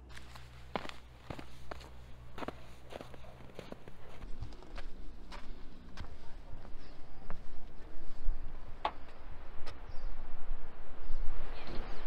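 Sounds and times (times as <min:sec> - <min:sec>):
footsteps on snow: 0:00.0 - 0:09.8.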